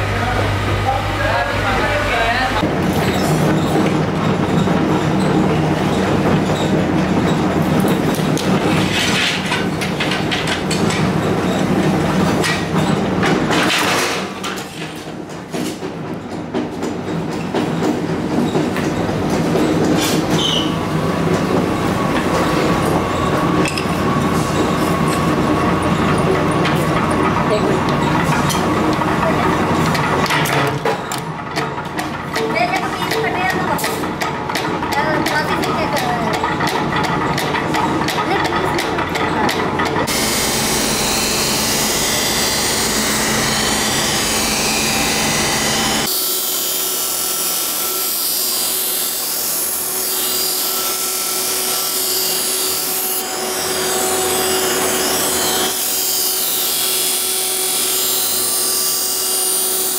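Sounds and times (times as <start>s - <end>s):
metalworking machine droning: 0.0s - 59.9s.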